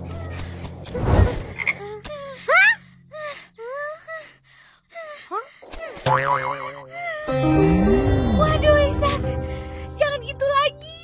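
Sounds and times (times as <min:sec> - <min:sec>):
music: 0:07.3 - 0:11.0.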